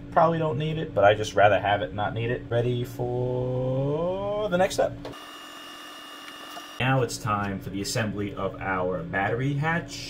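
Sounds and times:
man speaking: 0.0s - 5.0s, 6.8s - 10.0s.

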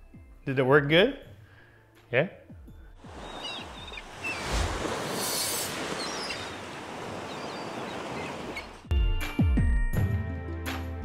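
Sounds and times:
ocean surf breaking on shore: 3.0s - 8.8s.

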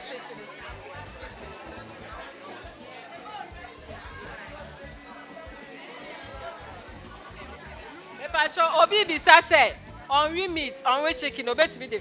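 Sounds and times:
crowd chatter: 0.0s - 12.0s
music: 0.0s - 12.0s.

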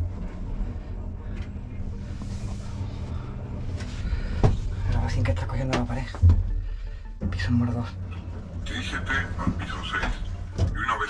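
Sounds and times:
elevator rumble: 0.0s - 11.0s.

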